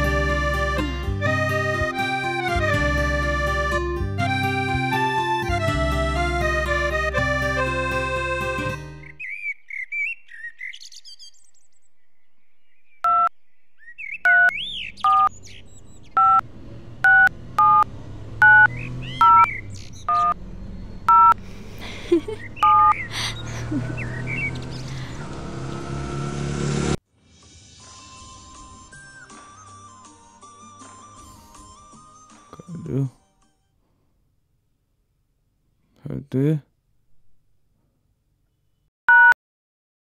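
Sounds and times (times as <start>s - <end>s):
instrumental music: 0.0s - 9.2s
birds chirping: 8.4s - 26.1s
phone keypad beeps: 13.0s - 13.3s, 14.3s - 15.3s, 16.2s - 16.4s, 17.0s - 17.8s, 18.4s - 19.5s, 20.1s - 20.4s, 21.1s - 21.4s, 22.6s - 23.0s, 39.1s - 39.4s.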